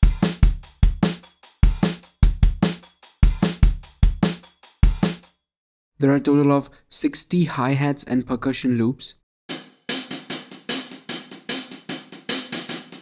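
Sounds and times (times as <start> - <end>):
acoustic drum loop: 0.0 - 5.3, 9.5 - 13.0.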